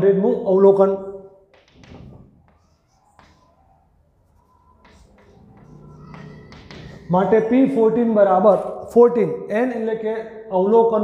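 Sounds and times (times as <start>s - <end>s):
chalk tapping on blackboard: 1.5s - 7.2s.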